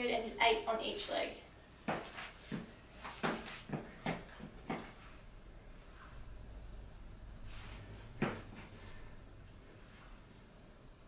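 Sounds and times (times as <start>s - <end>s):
soft knocks and scuffs on floor: 1.8s - 5.1s, 8.1s - 8.8s.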